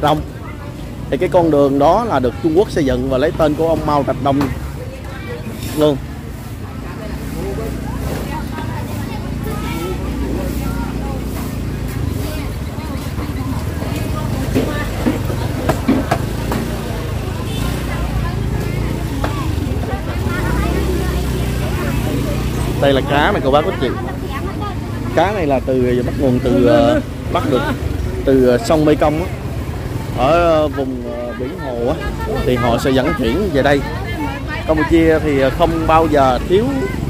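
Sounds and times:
low rumble of traffic: 0:00.0 - 0:37.0
voices of vendors and shoppers: 0:00.0 - 0:37.0.

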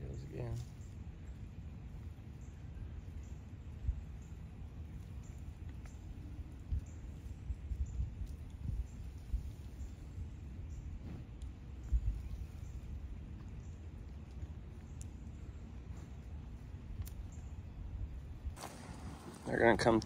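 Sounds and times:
wind buffeting microphone: 0:00.0 - 0:20.0
faint clicks: 0:13.4 - 0:15.4, 0:17.0 - 0:17.5.

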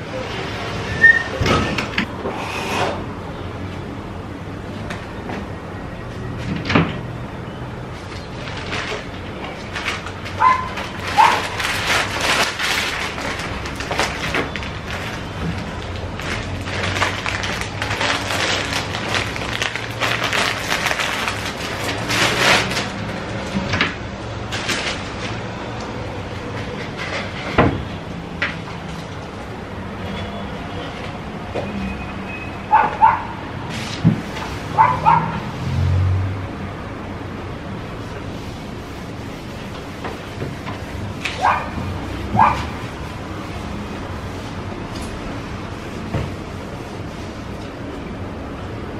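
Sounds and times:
short squeaks: 0:00.9 - 0:01.9
paper towel rustling: 0:07.9 - 0:23.6, 0:33.6 - 0:35.2, 0:37.9 - 0:48.0.

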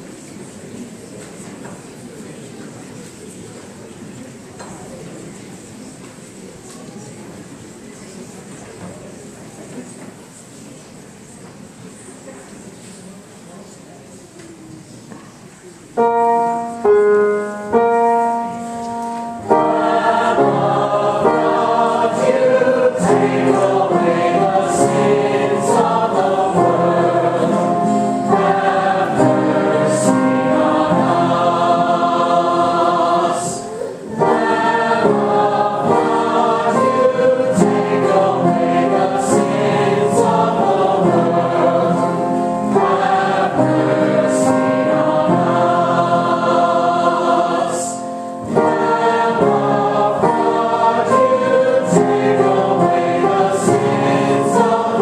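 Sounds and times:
church choir singing a hymn: 0:16.0 - 0:55.0.

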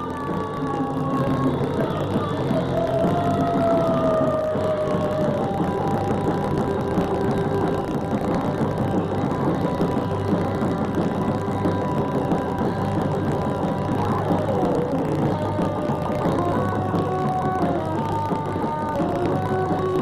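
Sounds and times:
held electric guitar notes: 0:00.0 - 0:20.0
live rock band: 0:00.0 - 0:20.0.

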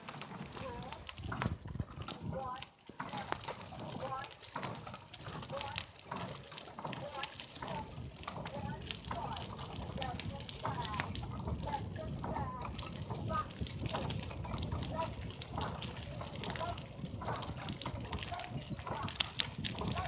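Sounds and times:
bicycle rattling over gravel: 0:00.0 - 0:20.0.

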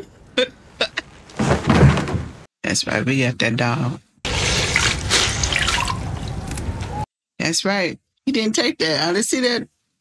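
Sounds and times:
water dripping and trickling: 0:04.3 - 0:06.5.

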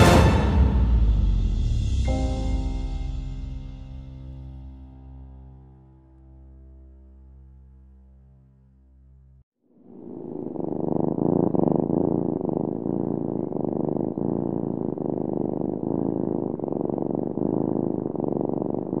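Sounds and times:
cat purring: 0:09.7 - 0:19.0.

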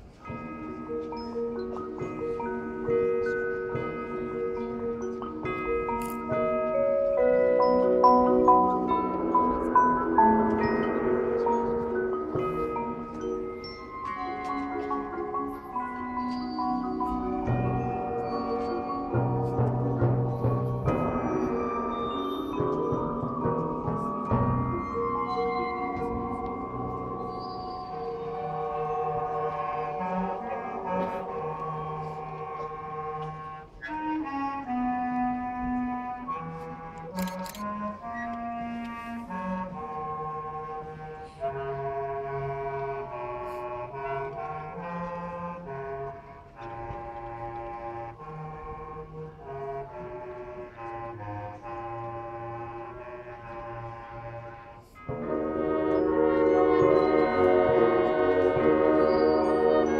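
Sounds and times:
marching band playing: 0:00.2 - 0:41.6, 0:42.2 - 0:59.9.

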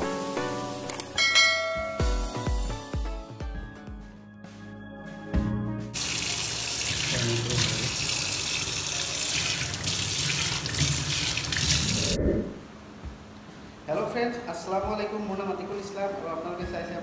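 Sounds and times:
tap water running into sink: 0:06.0 - 0:12.2.

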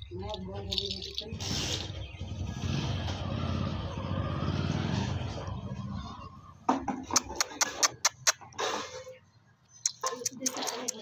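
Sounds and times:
vehicle engine rumbling: 0:00.0 - 0:10.2.

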